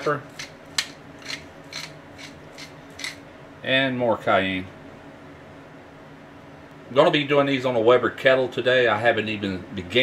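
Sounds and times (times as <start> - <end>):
pepper mill grinding: 0.0 - 3.2.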